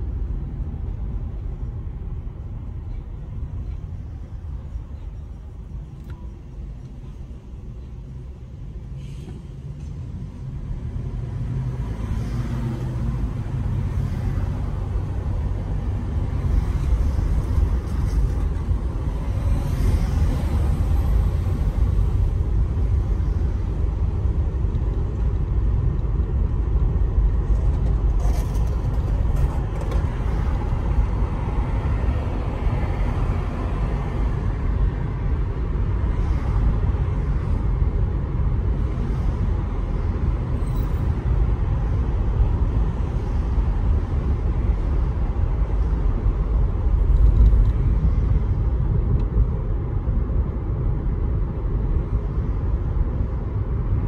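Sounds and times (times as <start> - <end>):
car road and engine rumble: 0.0 - 54.0.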